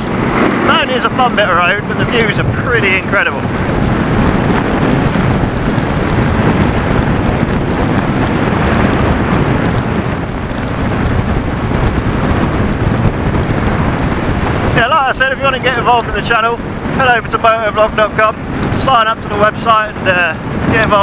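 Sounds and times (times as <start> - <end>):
motorcycle engine running: 0.0 - 19.1
wind buffeting microphone: 0.0 - 21.0.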